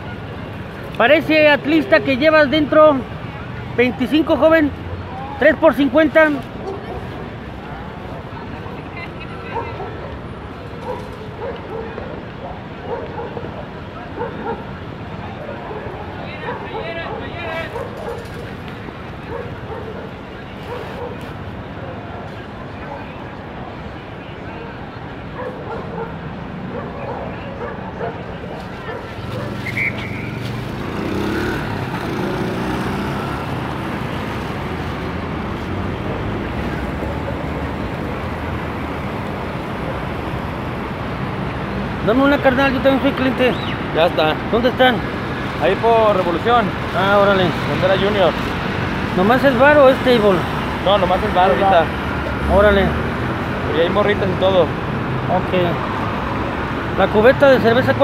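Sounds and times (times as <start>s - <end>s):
traffic running: 0.0s - 58.0s.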